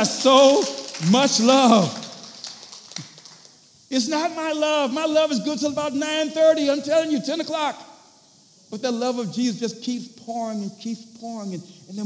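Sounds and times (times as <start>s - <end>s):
man speaking over amplification: 0.0s - 2.2s, 3.9s - 7.9s, 8.7s - 12.0s.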